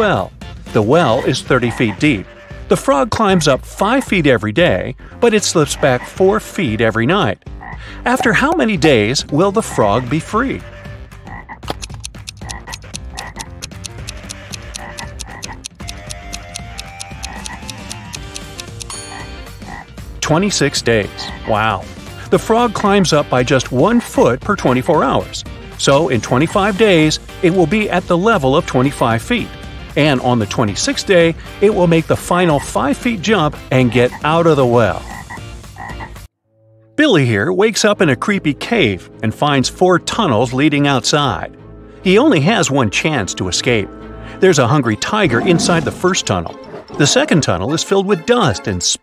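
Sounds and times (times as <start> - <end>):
countdown timer ticking: 0.0 - 4.4, 5.4 - 10.4, 11.3 - 36.2
cartoon frog croaking: 1.1 - 2.3, 5.7 - 6.2, 7.4 - 8.6, 9.6 - 19.9, 21.2 - 21.6, 34.9 - 36.2
held musical notes: 12.0 - 19.6.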